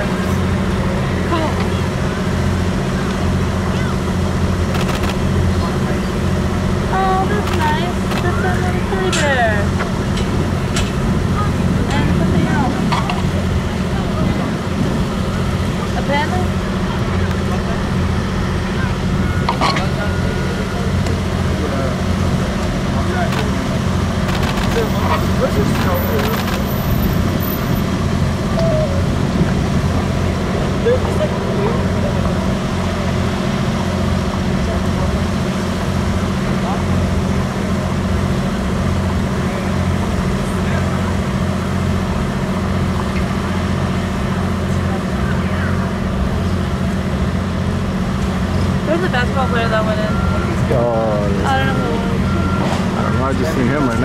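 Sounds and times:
faint voices: 0:00.0 - 0:54.0
low engine hum: 0:00.0 - 0:54.0.

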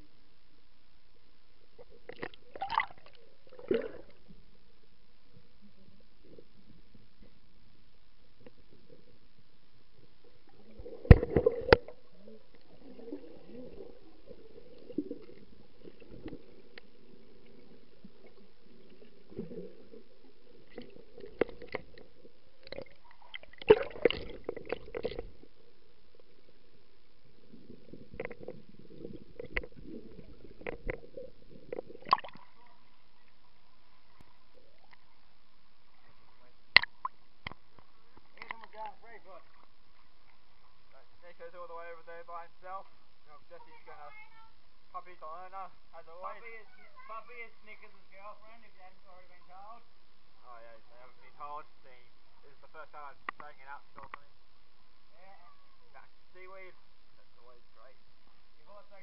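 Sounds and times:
water swishing and gurgling: 0:00.0 - 0:45.0.

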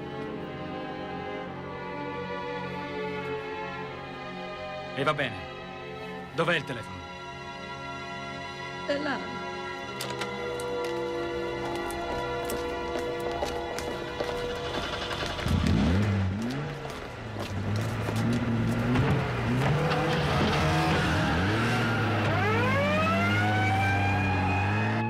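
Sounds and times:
music playing: 0:00.0 - 0:15.6
car engine revving and accelerating: 0:13.8 - 0:25.0.

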